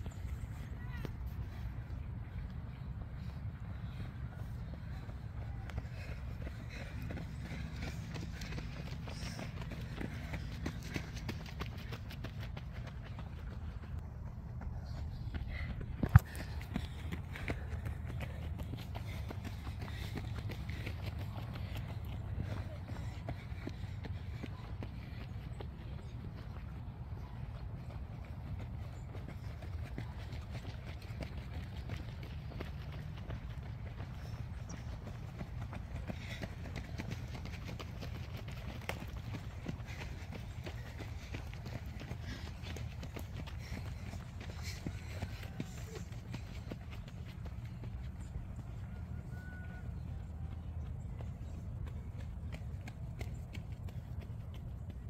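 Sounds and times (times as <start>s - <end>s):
runners' footsteps on dirt trail: 0.0s - 55.0s.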